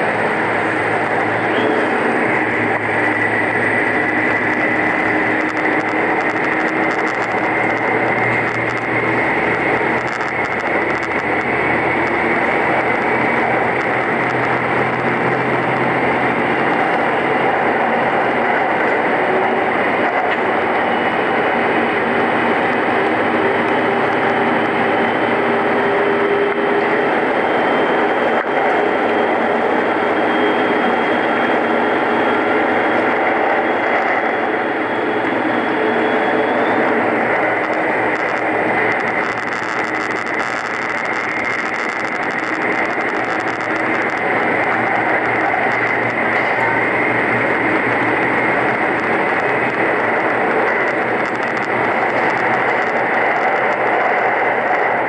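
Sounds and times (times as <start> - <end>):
thin high whine: 0.0 - 55.0
train engine rumbling: 0.0 - 55.0
wheels on rail: 0.0 - 55.0.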